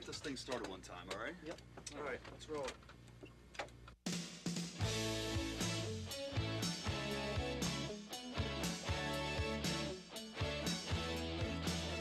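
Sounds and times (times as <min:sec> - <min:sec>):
rock band playing: 0:04.8 - 0:12.0.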